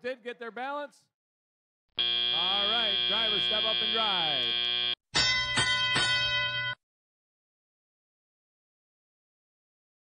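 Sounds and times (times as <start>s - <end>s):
ringing bell strikes: 5.2s - 6.8s.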